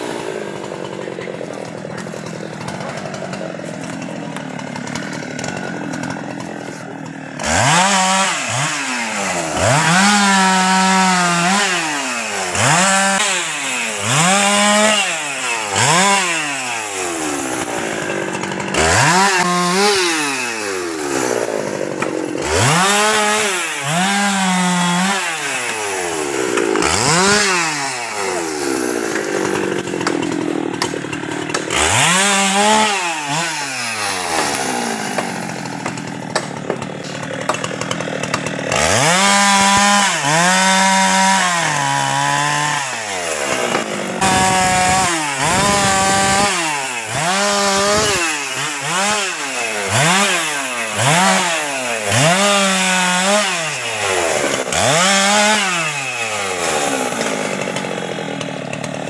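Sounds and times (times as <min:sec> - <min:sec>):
chainsaw revving: 0:00.0 - 0:59.0.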